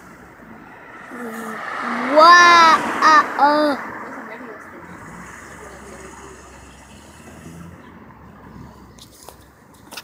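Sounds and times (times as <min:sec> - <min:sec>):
car engine and road hum: 0:00.0 - 0:10.0.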